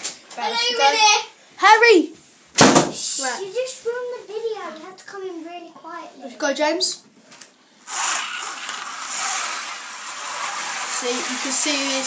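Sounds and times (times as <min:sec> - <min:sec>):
slot car motor whir: 0:07.9 - 0:12.0.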